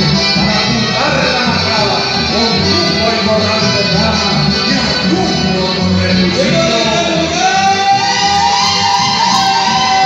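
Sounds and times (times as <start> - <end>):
accordion: 0.0 - 10.0
acoustic guitars: 0.0 - 10.0
long held high note: 7.2 - 10.0.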